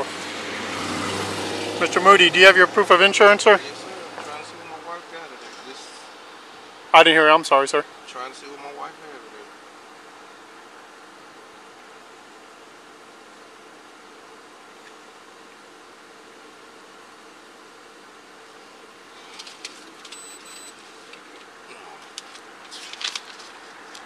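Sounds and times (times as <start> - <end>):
vehicle idling hum: 0.0 - 24.0
papers rustling: 20.9 - 24.0.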